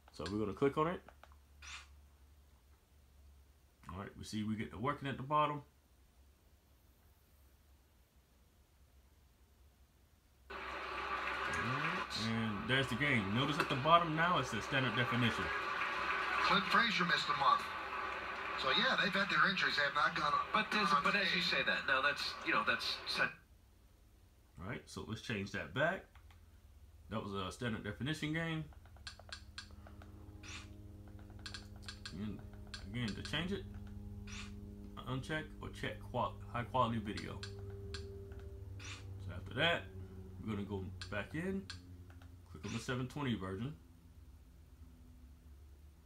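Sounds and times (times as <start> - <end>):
low steady hum: 0.0 - 46.0
ballpark crowd noise: 10.5 - 23.2
commentator speaking: 11.5 - 15.6, 16.4 - 17.8, 18.6 - 23.4.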